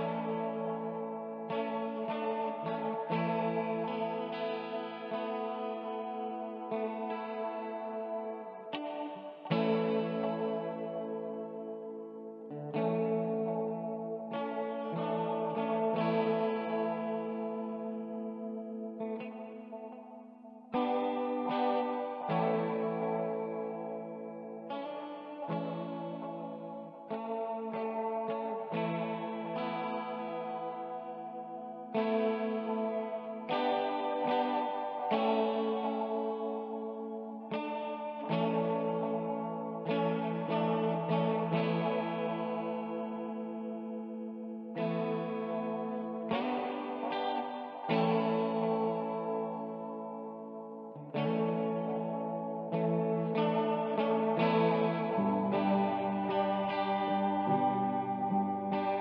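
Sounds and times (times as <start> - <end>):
clean guitar chords: 0.0 - 59.0.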